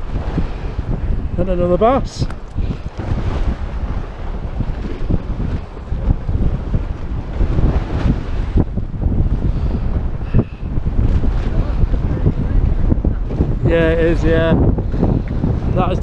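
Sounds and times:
sea washing against wall: 0:00.0 - 0:16.0
wind buffeting microphone: 0:00.0 - 0:16.0.

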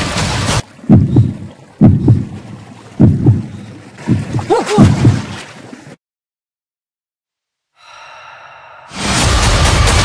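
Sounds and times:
heartbeat thumps: 0:00.8 - 0:02.4, 0:03.0 - 0:05.3.

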